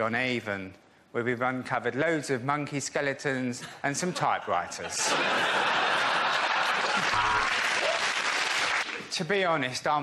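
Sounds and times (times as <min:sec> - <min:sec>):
audience applauding: 0:05.4 - 0:09.1.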